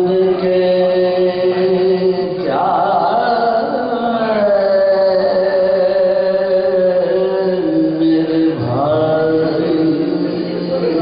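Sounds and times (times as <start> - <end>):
men chanting held notes: 0.0 - 11.0.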